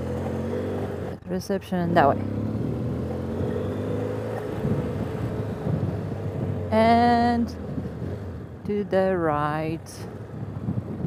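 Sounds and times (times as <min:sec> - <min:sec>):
motorcycle engine running: 0:00.0 - 0:08.6
tyres on dirt track: 0:00.0 - 0:11.0.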